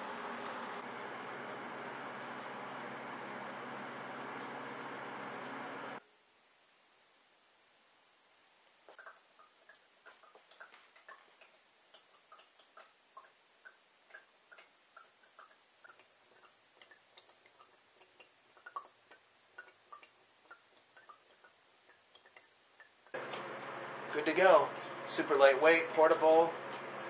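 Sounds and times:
water dripping into a glass: 9.0s - 23.2s.

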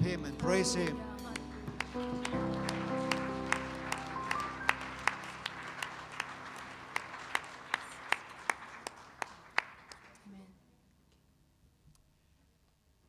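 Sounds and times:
sustained keyboard chord: 0.0s - 8.1s
congregation applauding: 0.5s - 10.3s
close sharp clap: 1.4s - 10.3s.

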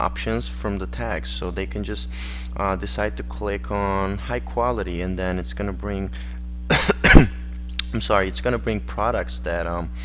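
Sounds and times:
low electrical hum: 0.0s - 10.0s
man coughing: 6.7s - 7.5s.

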